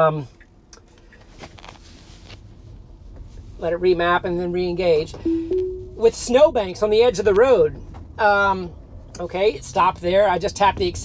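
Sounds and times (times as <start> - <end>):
road and tyre rumble: 0.3 - 5.2, 6.0 - 11.0.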